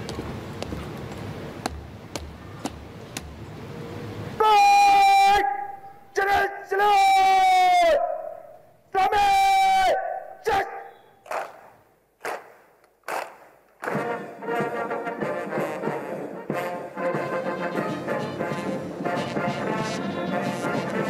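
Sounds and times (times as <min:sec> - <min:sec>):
bugle notes: 0:13.8 - 0:21.0
military brass band playing: 0:13.8 - 0:21.0.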